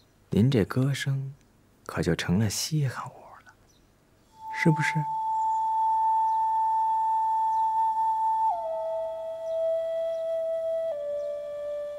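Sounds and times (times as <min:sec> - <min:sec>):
long flute note: 0:04.4 - 0:11.9.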